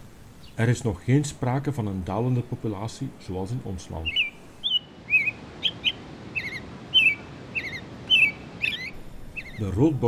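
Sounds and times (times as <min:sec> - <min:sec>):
sparrow chirping: 0:00.4 - 0:00.6, 0:03.9 - 0:10.0.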